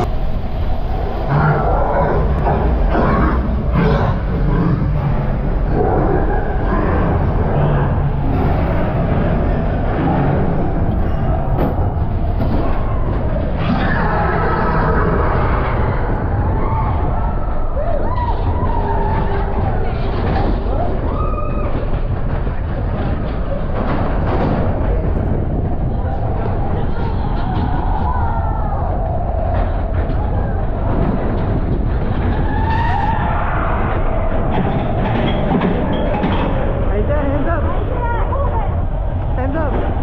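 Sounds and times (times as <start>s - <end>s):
roller coaster wheels rumbling: 0.0s - 40.0s.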